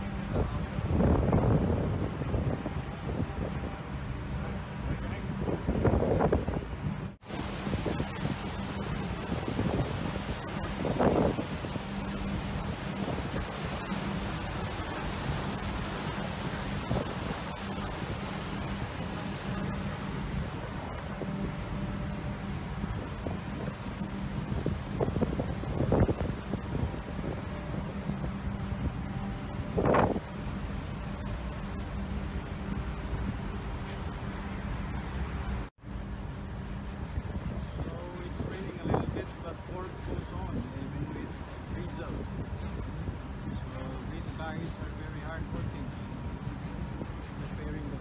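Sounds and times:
low ship hum: 0:00.0 - 0:48.0
sea rushing along ship: 0:00.0 - 0:48.0
wind buffeting microphone: 0:00.0 - 0:48.0.

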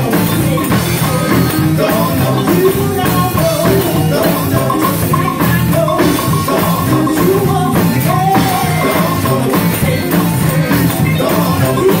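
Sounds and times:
band with drum kit: 0:00.0 - 0:12.0.

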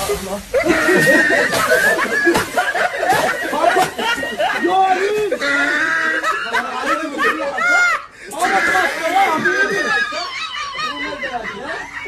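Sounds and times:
people laughing and exclaiming: 0:00.0 - 0:12.0.

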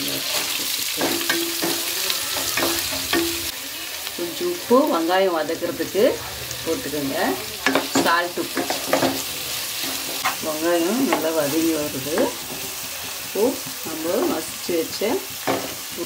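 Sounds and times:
vegetables sizzling in oil: 0:00.0 - 0:16.0.

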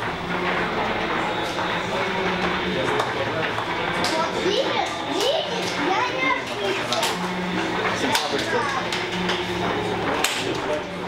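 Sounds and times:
chatter of many voices: 0:00.2 - 0:11.0.

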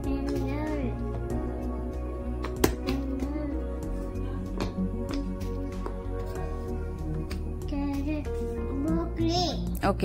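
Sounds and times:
background music with sustained tones: 0:00.0 - 0:10.0
wooden puzzle piece knocking: 0:02.3 - 0:03.4.

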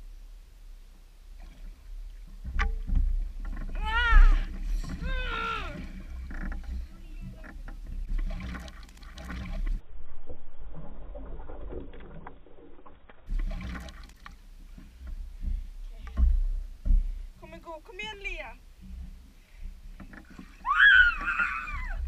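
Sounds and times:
water sloshing and splashing: 0:00.9 - 0:22.0
rumbling knocks from handling: 0:02.3 - 0:09.7, 0:14.9 - 0:17.2
short voice cry: 0:03.8 - 0:05.8.

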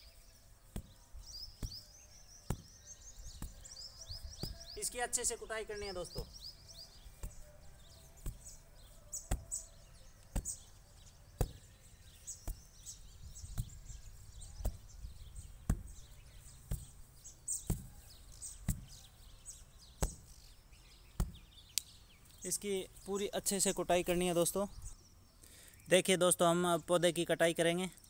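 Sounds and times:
brick thudding on soil: 0:00.7 - 0:04.8, 0:06.0 - 0:09.7, 0:10.3 - 0:19.1, 0:19.8 - 0:20.5, 0:21.1 - 0:21.7.

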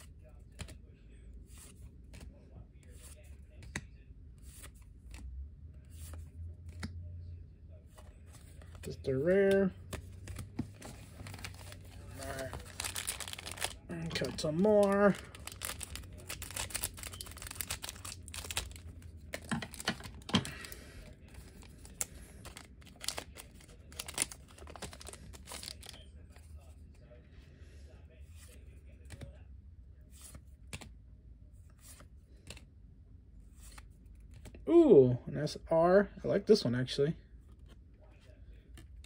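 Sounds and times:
cards rustling and clicking: 0:00.0 - 0:00.8, 0:01.4 - 0:02.3, 0:02.9 - 0:05.3, 0:05.9 - 0:07.0, 0:07.9 - 0:27.0, 0:28.3 - 0:29.4, 0:30.1 - 0:31.0, 0:31.6 - 0:32.7, 0:33.5 - 0:34.6, 0:38.6 - 0:39.0
foil wrapper crinkling and tearing: 0:11.2 - 0:18.8, 0:21.7 - 0:26.0.

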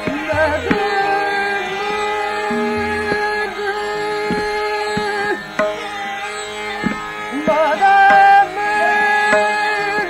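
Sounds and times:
tabla strokes: 0:00.0 - 0:10.0
tanpura drone: 0:00.0 - 0:10.0
woman singing long note: 0:02.5 - 0:03.9.

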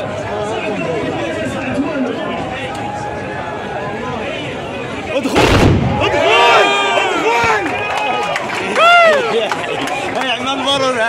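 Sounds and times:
spectators chattering: 0:00.0 - 0:11.0
loud musket volley blast: 0:05.3 - 0:06.6.

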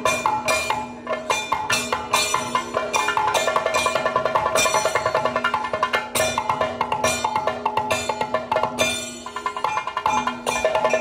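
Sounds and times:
drum and metal percussion: 0:00.0 - 0:11.0
ringing struck tones: 0:00.0 - 0:11.0.

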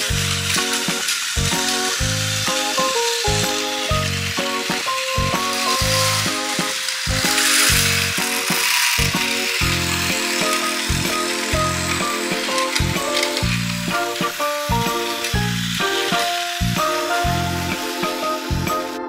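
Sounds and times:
background music with short chords: 0:00.0 - 0:19.0
toy train motors whirring: 0:00.0 - 0:19.0.

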